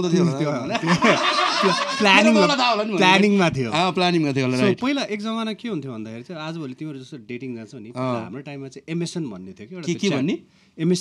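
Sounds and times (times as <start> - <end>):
men talking: 0.0 - 11.0
men laughing: 0.2 - 3.2.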